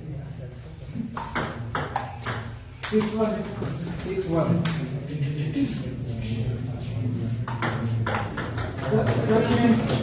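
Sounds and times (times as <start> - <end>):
murmur of voices: 3.0 - 10.0.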